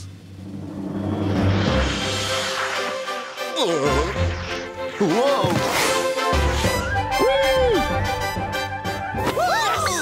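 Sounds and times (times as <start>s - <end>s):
cartoon music: 6.5s - 8.3s.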